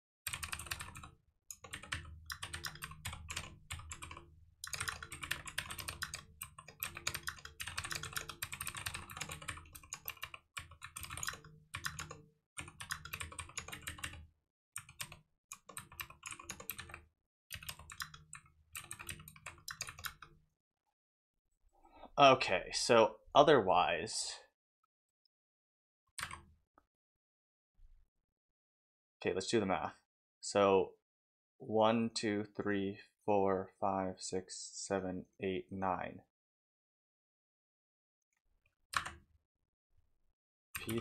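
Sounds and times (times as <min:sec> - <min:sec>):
fast keyboard typing: 0:00.3 - 0:14.2, 0:14.8 - 0:20.3, 0:39.0 - 0:39.2, 0:40.8 - 0:41.0.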